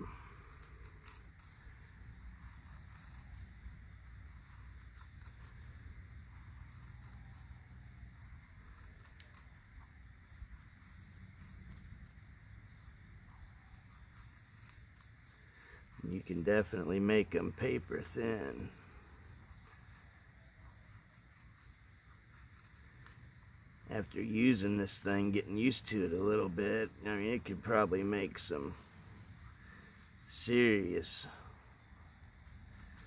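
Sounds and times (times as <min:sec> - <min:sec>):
knife shaving wood: 0:00.0 - 0:33.0.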